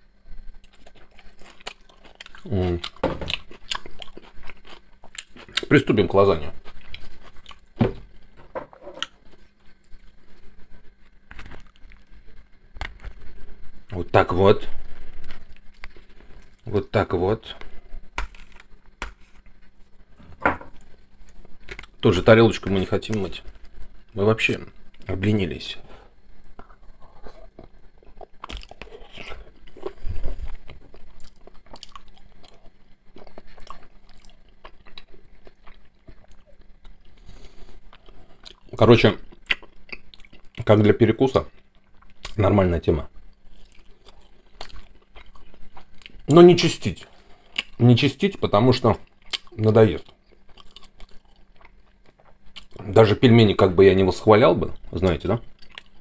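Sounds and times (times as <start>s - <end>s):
chewing: 0.4s - 5.7s, 6.4s - 7.7s, 26.5s - 40.7s, 43.3s - 46.3s, 49.0s - 52.9s, 54.8s - 56.0s.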